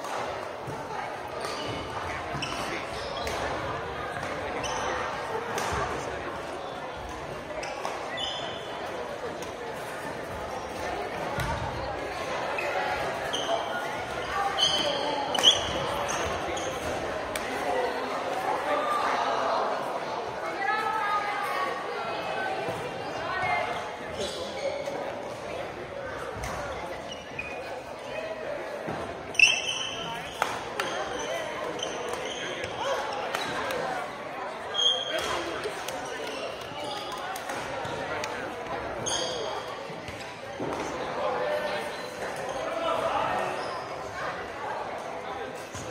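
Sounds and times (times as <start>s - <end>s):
players chatting: 0.0s - 45.9s
sneakers squeaking on floor: 1.3s - 5.2s, 7.5s - 8.9s, 12.5s - 17.1s, 23.4s - 25.1s, 26.2s - 27.9s, 29.2s - 33.8s, 34.6s - 41.0s, 41.9s - 44.1s
sneaker squeaks on wood: 7.6s - 8.7s, 12.6s - 16.9s, 29.3s - 33.7s, 34.7s - 35.5s, 39.0s - 39.7s.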